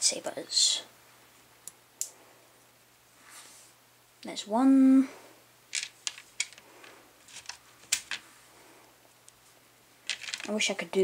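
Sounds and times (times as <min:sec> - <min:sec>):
plastic pieces clicking: 0:05.7 - 0:06.6, 0:07.3 - 0:08.2, 0:10.0 - 0:10.5.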